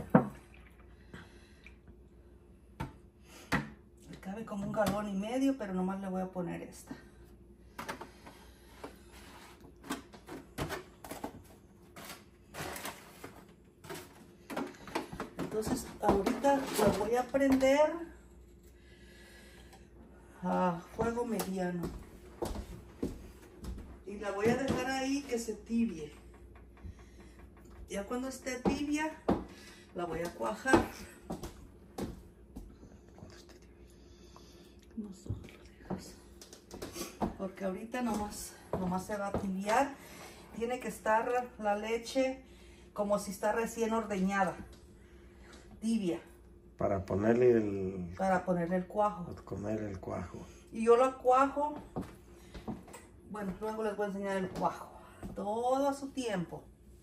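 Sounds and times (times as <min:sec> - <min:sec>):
woman's voice fragments: 0:04.0 - 0:07.2, 0:13.9 - 0:18.2, 0:20.3 - 0:22.6, 0:24.0 - 0:26.6, 0:27.3 - 0:31.4, 0:34.9 - 0:44.8, 0:45.7 - 0:46.4, 0:48.2 - 0:49.4, 0:50.6 - 0:52.0, 0:53.2 - 0:56.7
plastic jugs knocking and clicking: 0:13.3 - 0:17.6.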